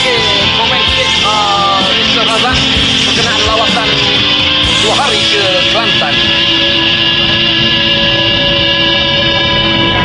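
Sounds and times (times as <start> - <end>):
karaoke backing music chord: 0.0 - 10.0.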